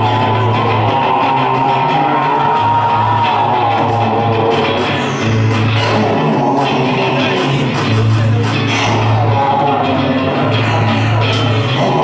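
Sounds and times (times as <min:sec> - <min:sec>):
electric guitar: 0:00.0 - 0:12.0
rock band playing live: 0:00.0 - 0:12.0.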